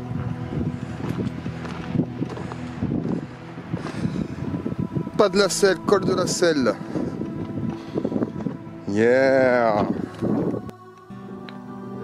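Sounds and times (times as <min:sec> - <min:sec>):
steady low hum: 0:00.0 - 0:08.9
wind buffeting microphone: 0:00.0 - 0:10.7
footsteps on rocky trail: 0:00.1 - 0:04.8, 0:06.8 - 0:08.8.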